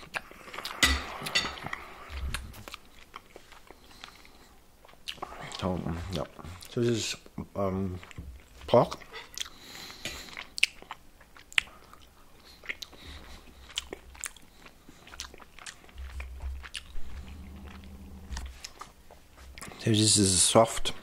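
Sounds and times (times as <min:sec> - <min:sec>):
person chewing: 0:00.0 - 0:06.8, 0:08.0 - 0:19.8
low hum: 0:16.0 - 0:18.7.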